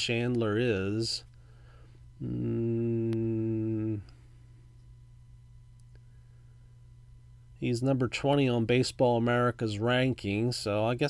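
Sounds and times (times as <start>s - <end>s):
low steady room hum: 0.0s - 11.0s
man humming: 2.2s - 4.2s.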